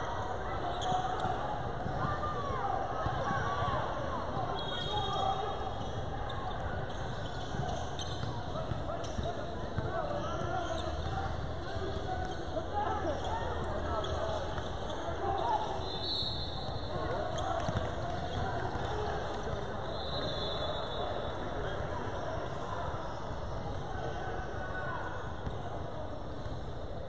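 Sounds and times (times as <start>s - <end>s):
chatter and calls echoing: 0.0s - 27.0s.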